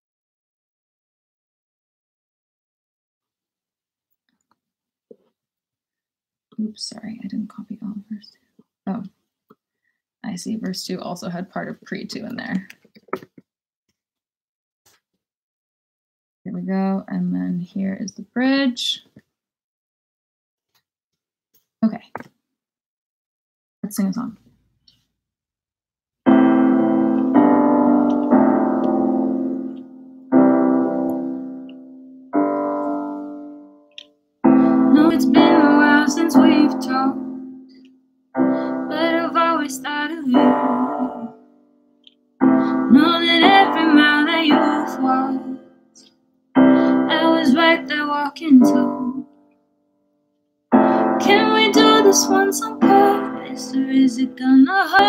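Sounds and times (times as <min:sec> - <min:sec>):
piano playing slow chords: 0:26.3 - 0:37.8, 0:38.4 - 0:41.4, 0:42.4 - 0:45.6, 0:46.6 - 0:49.3, 0:50.7 - 0:55.0
woman singing: 0:34.5 - 0:37.4, 0:38.7 - 0:41.4, 0:42.6 - 0:45.6, 0:46.9 - 0:49.2, 0:51.0 - 0:55.0.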